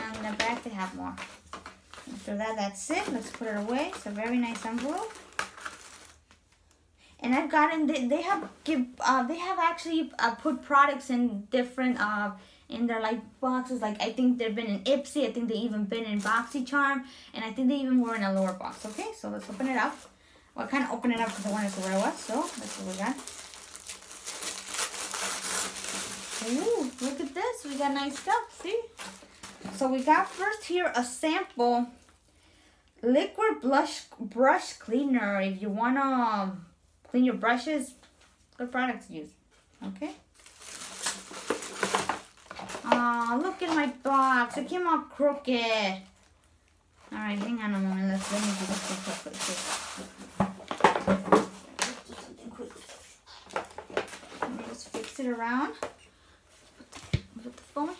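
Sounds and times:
packaging crinkling and rustling: 0.0s - 6.8s, 18.1s - 30.8s, 39.5s - 44.6s, 46.0s - 55.8s.

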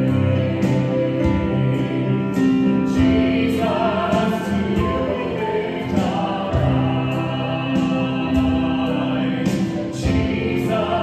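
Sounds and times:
choir singing gospel music: 0.0s - 11.0s
sustained instrumental notes: 0.0s - 11.0s.

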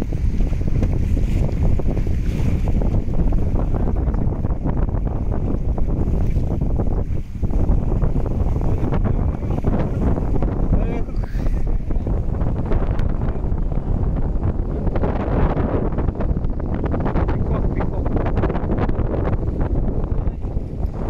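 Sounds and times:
water splashing along boat hull: 0.0s - 17.1s
wind buffeting microphone: 0.0s - 21.0s.

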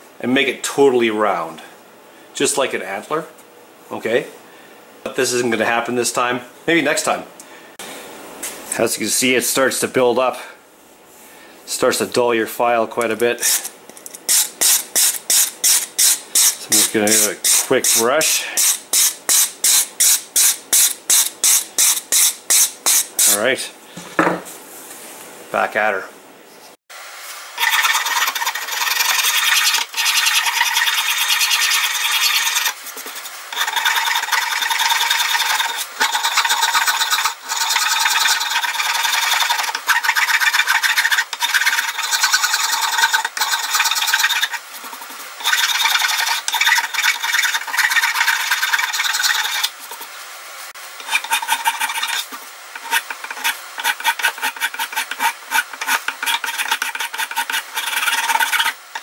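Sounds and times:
hand file rasping on board: 27.6s - 50.0s, 51.0s - 59.0s.

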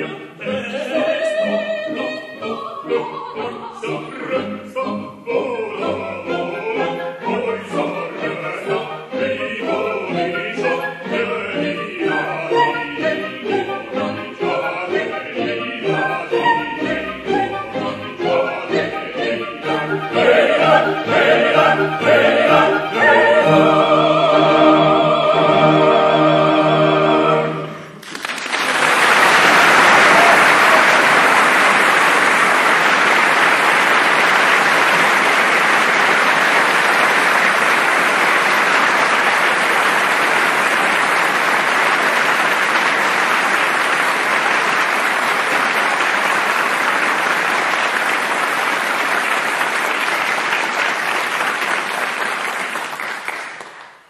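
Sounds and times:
audience applauding: 28.0s - 54.0s.

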